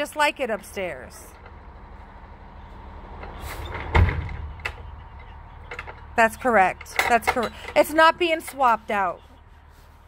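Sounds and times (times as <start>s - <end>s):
truck engine idling: 0.2s - 10.0s
heavy thud of truck door: 3.6s - 4.6s.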